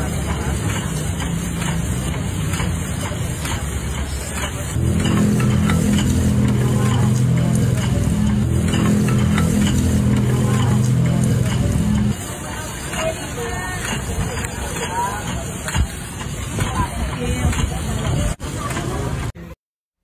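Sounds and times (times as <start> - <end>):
background voices: 4.0 - 18.4
low motor hum: 4.8 - 12.2.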